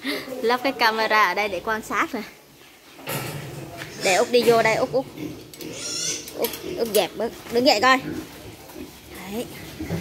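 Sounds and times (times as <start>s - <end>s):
woman's voice: 0.0s - 2.4s, 4.0s - 5.1s, 6.4s - 8.1s, 9.1s - 9.6s.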